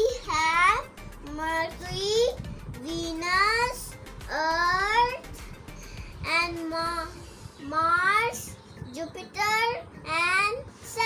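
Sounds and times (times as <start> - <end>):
child singing sing-song words: 0.0 - 5.4, 6.2 - 11.0.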